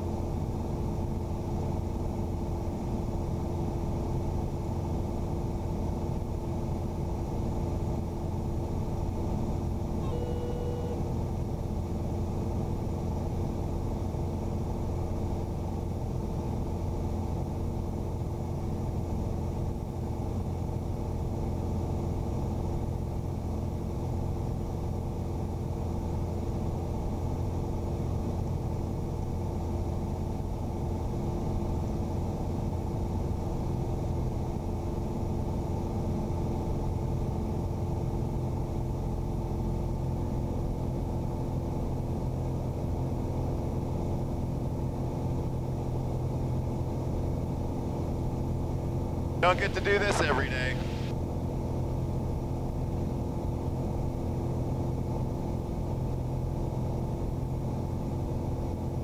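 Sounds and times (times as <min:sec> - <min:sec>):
propeller plane engine drone: 0:00.0 - 0:59.0.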